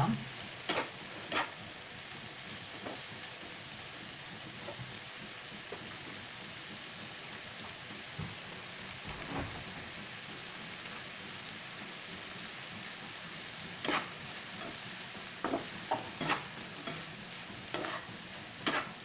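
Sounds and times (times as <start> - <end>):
meat and onions sizzling in a pan: 0.0 - 19.0.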